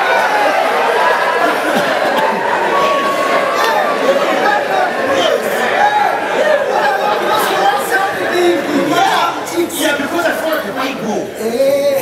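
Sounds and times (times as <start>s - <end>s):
indistinct chatter and laughing: 0.0s - 12.0s.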